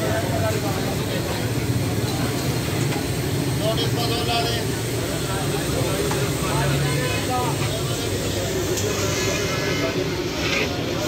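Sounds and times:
low street rumble: 0.0 - 11.0
people talking indistinctly: 0.0 - 11.0.

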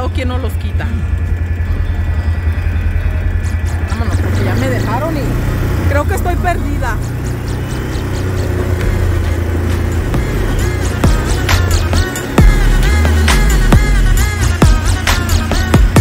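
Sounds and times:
quad engine rumbling: 0.0 - 16.0.

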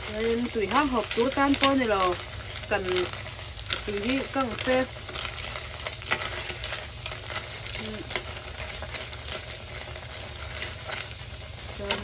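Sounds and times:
soup bubbling: 0.0 - 12.0.

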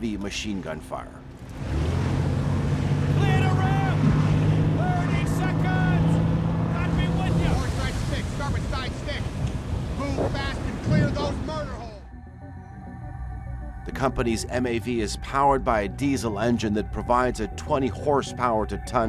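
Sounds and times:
wind: 0.0 - 12.1
boat engine drone: 1.2 - 19.0
waves and spray: 6.8 - 11.9.

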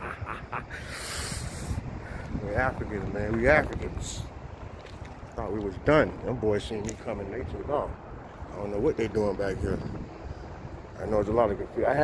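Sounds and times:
man's breathy laughter: 0.0 - 1.8
low microphone rumble: 0.0 - 12.0
soft hissing breath: 0.7 - 2.4.

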